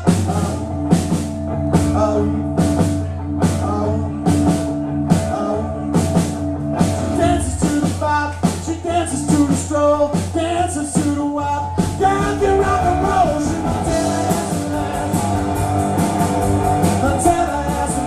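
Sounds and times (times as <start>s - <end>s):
bass guitar: 0.0s - 18.0s
drum kit beat: 0.0s - 18.0s
person singing: 6.8s - 16.0s, 16.6s - 18.0s
electric guitar: 11.6s - 18.0s.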